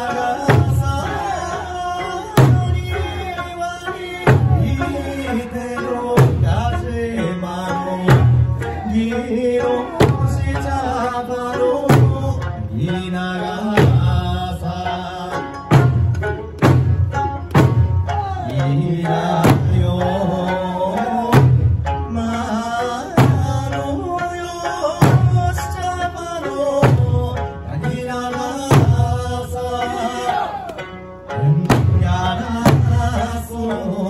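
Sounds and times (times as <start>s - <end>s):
small hand drums: 0.0s - 34.0s
sung folk melody over loudspeakers: 0.0s - 34.0s
large drum hits: 15.7s - 18.3s, 19.4s - 20.0s, 21.3s - 22.0s, 23.2s - 23.9s, 25.0s - 25.7s, 26.8s - 27.4s, 31.6s - 33.3s.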